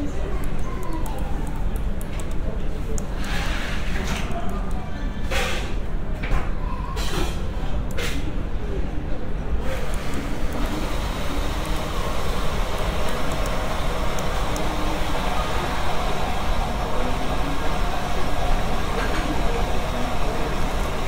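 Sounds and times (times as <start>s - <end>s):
faint indistinct voices: 0.0s - 21.0s.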